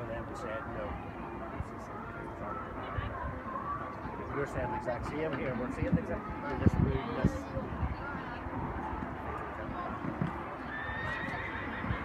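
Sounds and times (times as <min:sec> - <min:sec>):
horse whinnying: 0:10.7 - 0:12.0.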